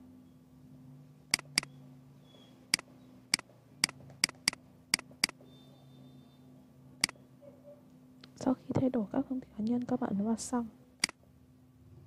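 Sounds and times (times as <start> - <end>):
faint low hum: 0.0 - 12.0
computer mouse clicks: 1.3 - 1.7, 2.7 - 5.4.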